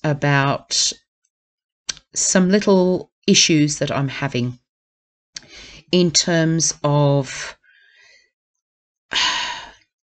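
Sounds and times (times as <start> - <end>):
woman sighing: 9.1 - 9.8.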